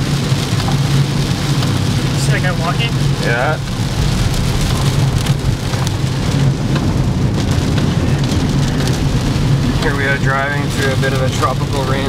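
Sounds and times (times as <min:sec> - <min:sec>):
car driving on wet road: 0:00.0 - 0:12.0
heavy rain on car roof: 0:00.0 - 0:12.0.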